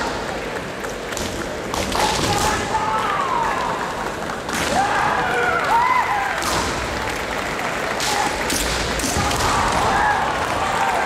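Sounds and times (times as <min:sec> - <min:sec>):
sharp cracks: 0:05.6 - 0:11.0.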